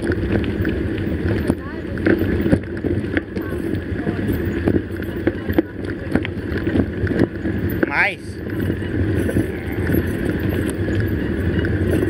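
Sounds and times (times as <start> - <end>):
road and wind rumble: 0.0 - 12.0.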